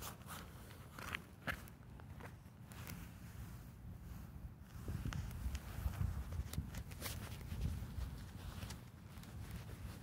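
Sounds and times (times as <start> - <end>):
footsteps walking: 0.0 - 3.2.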